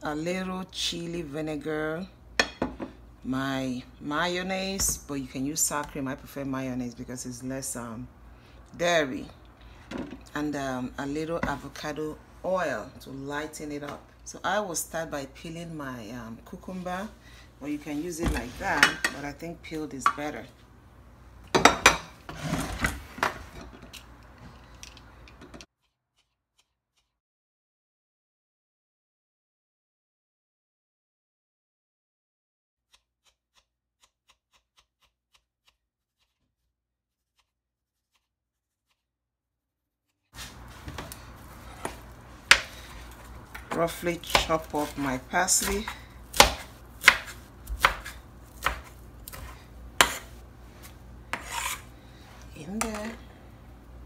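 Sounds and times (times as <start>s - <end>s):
kitchen utensils knocking and scraping: 18.2s - 19.3s, 21.5s - 23.8s
vegetable peeler rasping: 32.9s - 39.0s, 51.3s - 52.2s
knife chopping on cutting board: 41.7s - 50.4s, 51.3s - 51.8s.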